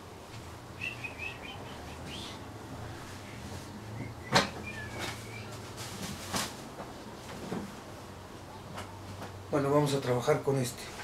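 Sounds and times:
small bird chirping: 0.8s - 2.4s, 3.2s - 5.6s.

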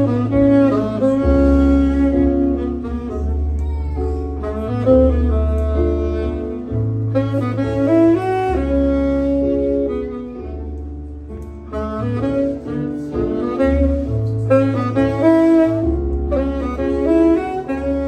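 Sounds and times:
saxophone playing slow melody: 0.0s - 18.0s.

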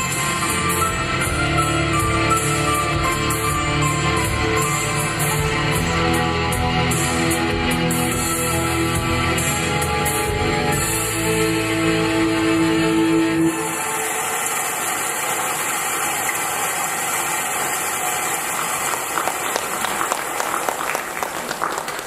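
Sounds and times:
audience applause: 14.0s - 22.0s.

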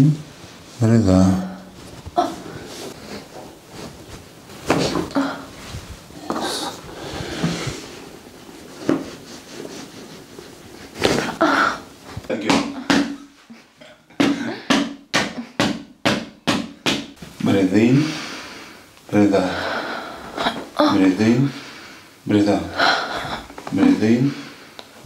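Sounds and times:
person breathing: 5.0s - 8.1s, 18.0s - 23.6s, 24.2s - 25.0s.

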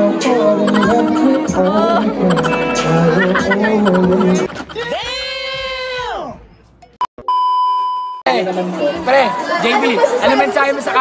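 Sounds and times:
voices talking: 0.7s - 5.6s.

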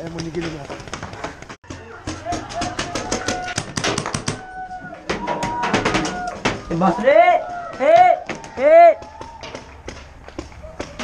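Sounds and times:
paintballs striking bunkers: 0.0s - 11.0s
voices: 4.4s - 9.7s.

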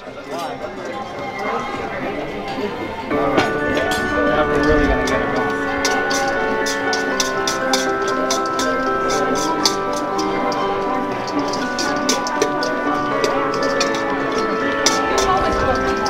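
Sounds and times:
background music: 0.0s - 16.0s
dining-room chatter: 0.0s - 16.0s
metal utensil clinking on bowl: 3.2s - 16.0s.

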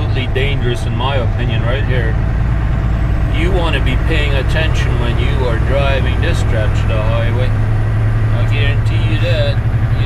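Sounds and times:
diesel engine droning: 0.0s - 10.0s.

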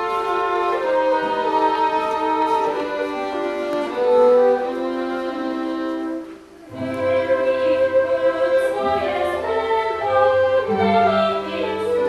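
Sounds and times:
bowed strings playing: 0.0s - 12.0s.

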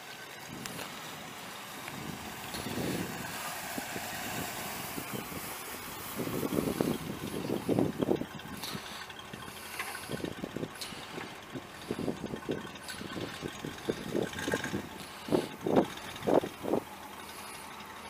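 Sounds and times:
truck engine idling: 0.0s - 18.0s.

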